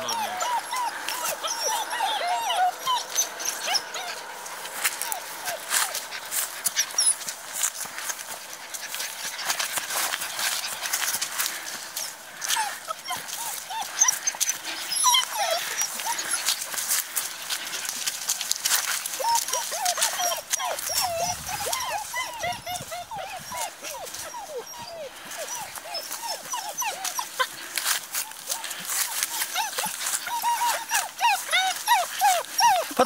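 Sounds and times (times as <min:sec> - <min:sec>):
puppies whimpering and whining: 0:00.0 - 0:33.0.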